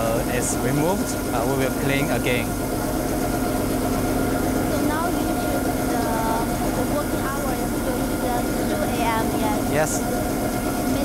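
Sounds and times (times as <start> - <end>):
street sweeper motor hum: 0.0 - 11.0.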